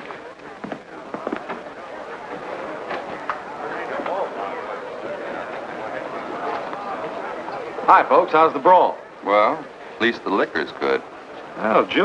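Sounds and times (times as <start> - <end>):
crowd murmuring: 0.0 - 12.0
fragments of voices: 0.0 - 12.0.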